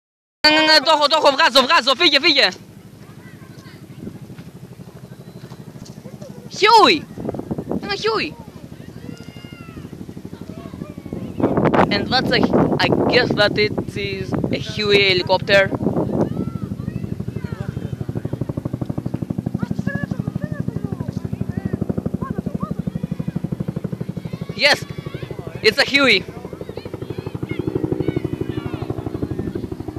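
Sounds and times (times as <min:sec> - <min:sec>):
helicopter rotor beating: 0:00.5 - 0:29.9.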